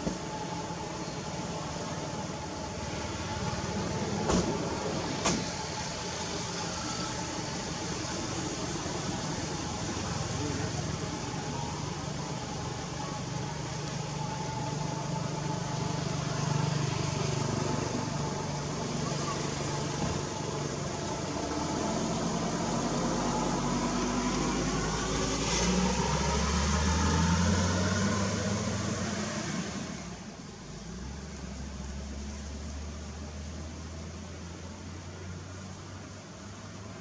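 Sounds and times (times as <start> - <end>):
motor vehicle rumble: 0.0 - 37.0.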